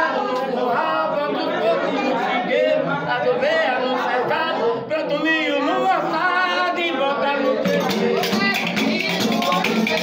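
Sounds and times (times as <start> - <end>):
men singing unaccompanied: 0.0 - 10.0.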